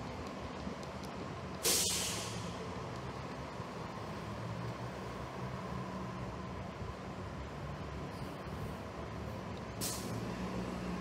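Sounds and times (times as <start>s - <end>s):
bus engine running: 0.0s - 11.0s
air brakes hissing: 1.6s - 2.6s, 9.8s - 10.2s.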